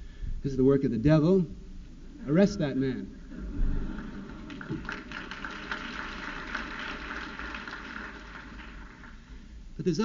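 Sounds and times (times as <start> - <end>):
audience laughing: 3.2 - 5.6
audience clapping: 3.8 - 9.5.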